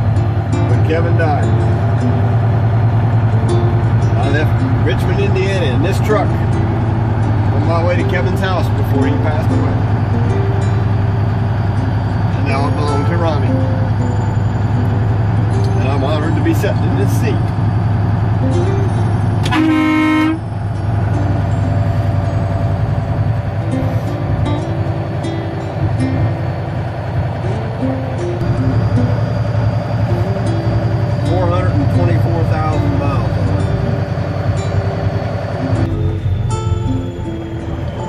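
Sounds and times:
diesel engine drone: 0.0 - 38.0
truck horn blast: 12.6 - 15.2, 19.3 - 20.8.

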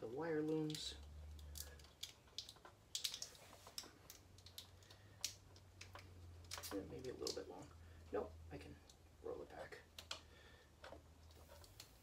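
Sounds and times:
plastic tubing clicks and crackles: 0.0 - 7.9, 8.7 - 12.0.

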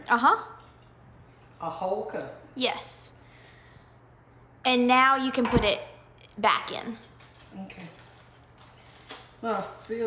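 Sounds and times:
low steady hum: 0.0 - 9.4
aluminium foil crinkling: 6.9 - 10.0.

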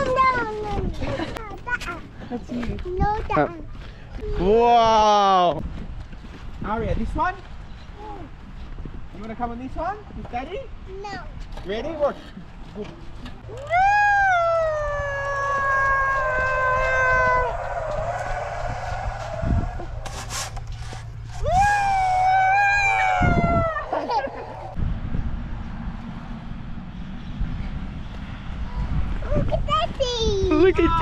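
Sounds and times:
long high wails: 13.5 - 20.5, 21.4 - 24.8
trolley rumbling along steel cable: 15.2 - 21.3.

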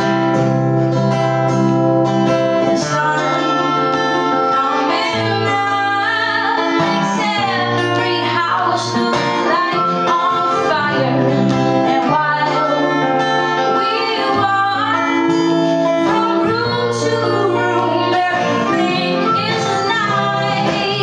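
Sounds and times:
acoustic guitar strummed: 0.0 - 21.0
woman singing: 2.6 - 21.0
melodica notes: 16.0 - 21.0.

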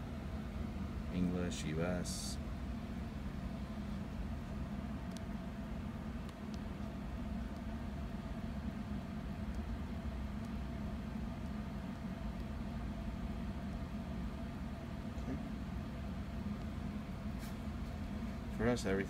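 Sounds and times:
computer cooling fans humming: 0.0 - 19.0.

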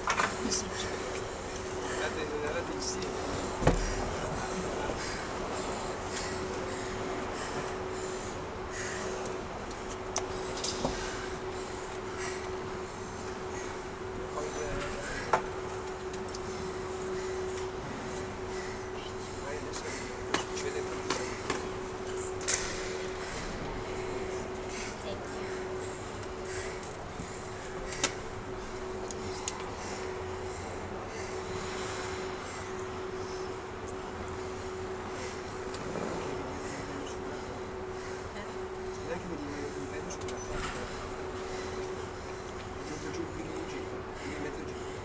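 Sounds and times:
steady hum: 0.0 - 45.0.

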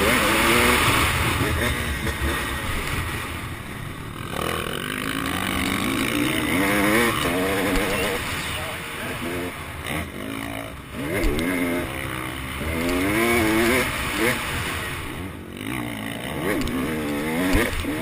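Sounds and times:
motocross bike engine revving: 0.0 - 18.0.

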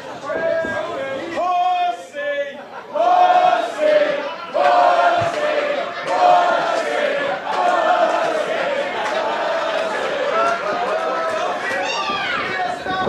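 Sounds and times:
crowd chanting: 2.6 - 12.1.

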